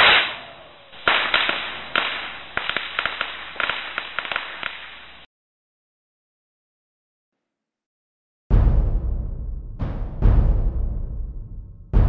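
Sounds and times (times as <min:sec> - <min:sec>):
sharp whip-like cracks: 0:00.0 - 0:05.3.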